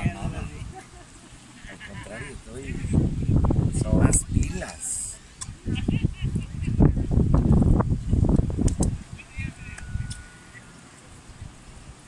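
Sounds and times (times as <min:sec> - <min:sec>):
voices talking and calling: 0:00.0 - 0:11.3.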